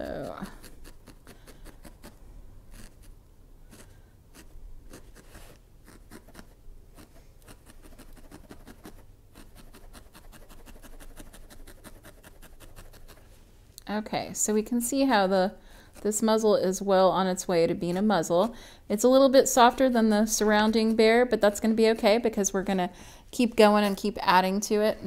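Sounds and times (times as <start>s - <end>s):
felting needle poking wool: 0.0s - 13.2s, 15.0s - 16.5s, 19.2s - 22.1s.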